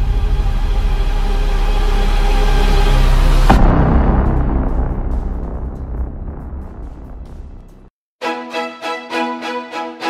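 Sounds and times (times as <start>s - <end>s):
low rumbling drone: 0.0s - 7.9s.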